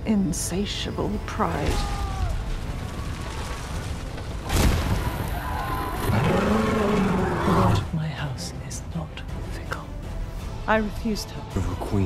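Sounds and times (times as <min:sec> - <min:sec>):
dragon roar: 0:05.3 - 0:07.9.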